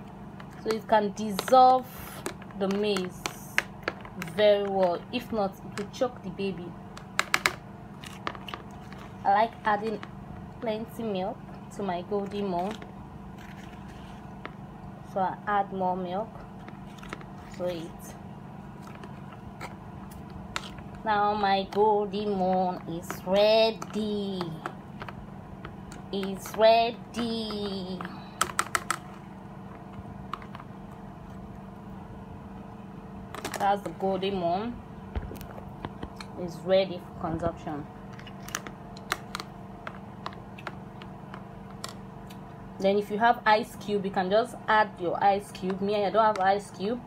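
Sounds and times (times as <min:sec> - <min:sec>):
steady low hum: 0:00.0 - 0:47.0
spoon scraping plastic bowl: 0:13.4 - 0:14.5.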